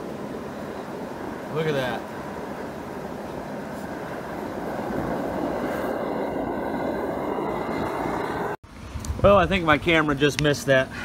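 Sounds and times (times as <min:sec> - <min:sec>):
burner flame rushing: 0:00.0 - 0:09.5.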